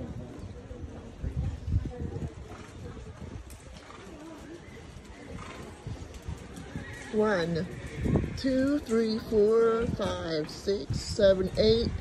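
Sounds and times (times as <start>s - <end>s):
distant voices: 0.0s - 12.0s
horse whinnying: 6.6s - 8.4s.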